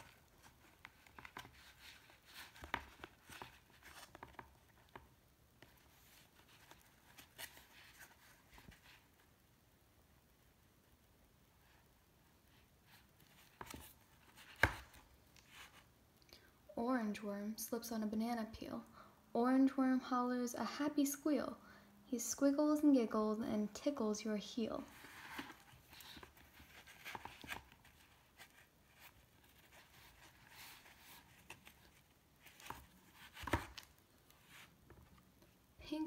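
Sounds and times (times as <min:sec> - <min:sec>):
cardboard page rustling: 0:00.0 - 0:09.3, 0:12.6 - 0:15.9, 0:24.8 - 0:35.2.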